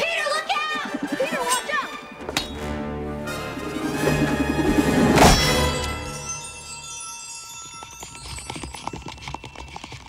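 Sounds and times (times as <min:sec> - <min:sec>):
excited voices: 0:00.0 - 0:02.2.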